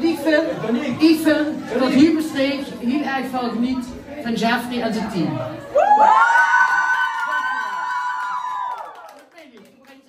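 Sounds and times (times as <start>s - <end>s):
high-pitched cheering whoop: 5.7s - 9.2s.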